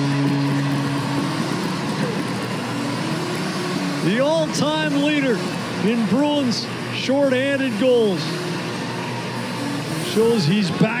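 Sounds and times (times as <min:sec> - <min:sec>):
crowd cheering: 0:10.1 - 0:11.0.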